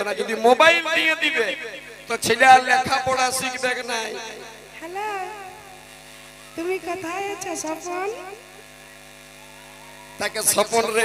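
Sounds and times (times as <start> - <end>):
voice over loudspeakers: 0.0 - 5.4
mains hum and buzz: 0.0 - 11.0.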